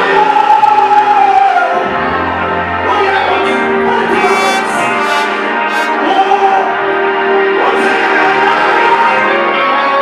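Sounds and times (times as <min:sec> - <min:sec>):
brass chords: 0:01.2 - 0:10.0
man singing into microphone: 0:02.8 - 0:06.8, 0:07.6 - 0:10.0.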